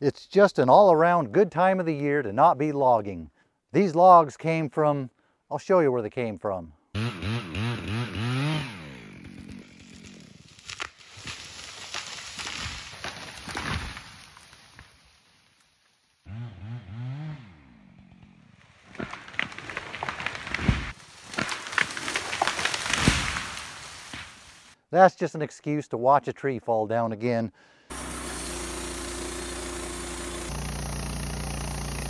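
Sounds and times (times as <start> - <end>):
chainsaw revving: 7.0 - 10.6, 16.3 - 20.6, 27.9 - 32.0
tree cracking and crashing down: 9.1 - 15.7, 18.5 - 24.8.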